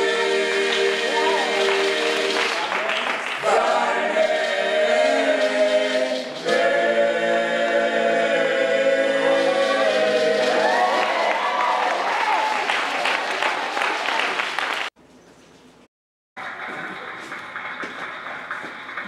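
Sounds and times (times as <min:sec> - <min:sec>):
male vocal group singing a cappella: 0:00.0 - 0:02.3, 0:03.4 - 0:10.8
applause: 0:01.6 - 0:03.5, 0:10.6 - 0:15.0, 0:16.4 - 0:19.0.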